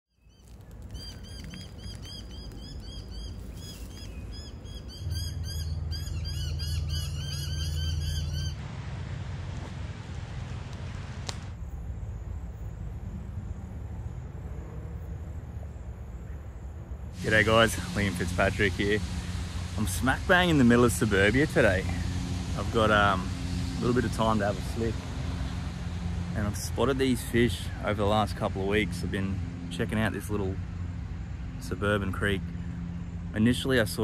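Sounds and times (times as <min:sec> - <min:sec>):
birds chirping: 0:00.1 - 0:08.6
outdoor hiss: 0:16.2 - 0:29.1.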